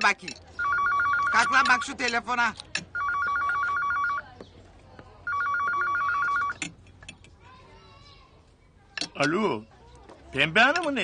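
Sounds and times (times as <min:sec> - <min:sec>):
telephone ringing trill: 0:00.6 - 0:01.9, 0:02.9 - 0:04.2, 0:05.2 - 0:06.6.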